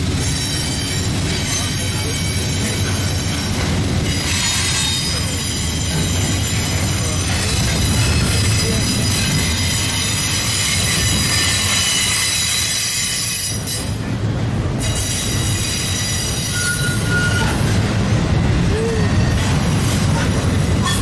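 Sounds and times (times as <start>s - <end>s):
train wheel flanges squealing: 0.0s - 14.1s, 14.7s - 18.0s, 18.7s - 21.0s
wheels rumbling on rail: 0.0s - 21.0s.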